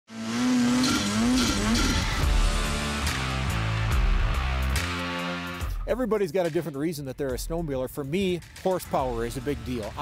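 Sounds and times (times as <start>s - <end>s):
snowmobile engine revving: 0.1s - 3.8s.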